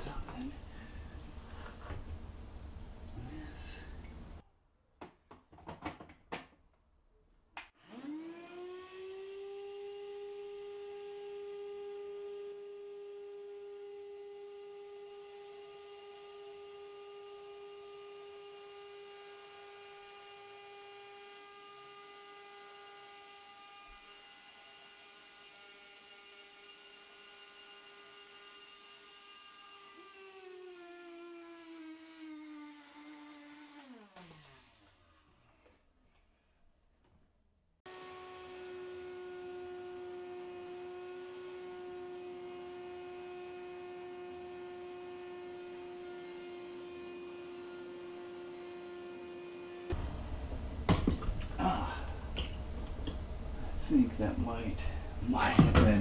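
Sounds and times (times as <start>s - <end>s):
electric motor tool whining: 7.8s - 35.8s, 37.9s - 51.6s.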